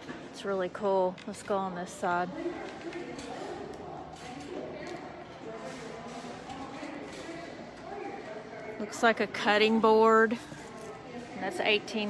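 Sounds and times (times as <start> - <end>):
indistinct chatter: 0.0 - 12.0
store background noise: 0.0 - 12.0.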